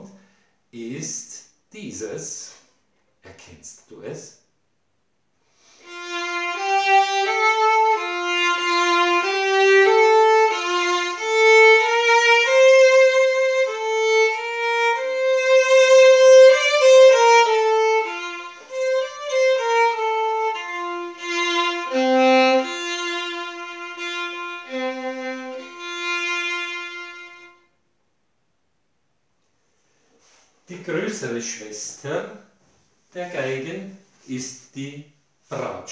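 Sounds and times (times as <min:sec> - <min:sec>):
solo violin melody: 0:05.7 - 0:27.8.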